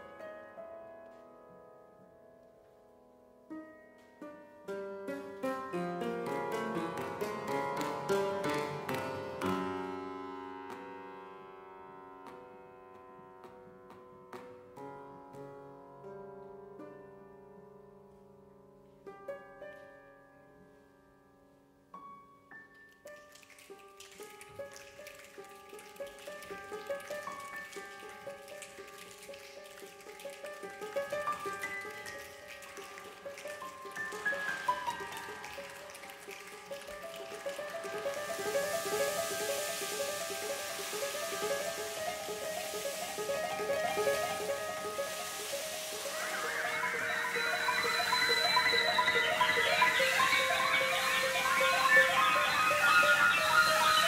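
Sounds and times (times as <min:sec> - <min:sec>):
concert band and piano playing: 0:05.3 - 0:11.3, 0:30.9 - 0:54.0
hissing shimmer: 0:38.4 - 0:54.0.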